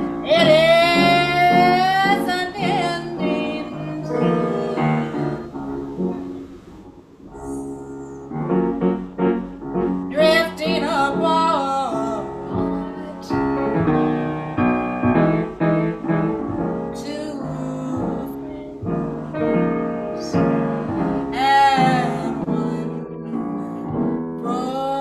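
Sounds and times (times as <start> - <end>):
bass: 0.0 - 25.0
jazz waltz: 0.0 - 25.0
piano: 0.0 - 25.0
sliding lead melody: 0.0 - 25.0.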